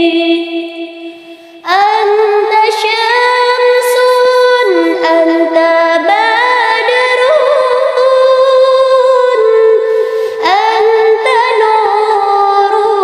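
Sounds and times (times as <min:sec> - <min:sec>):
woman singing devotional song: 0:00.0 - 0:13.0.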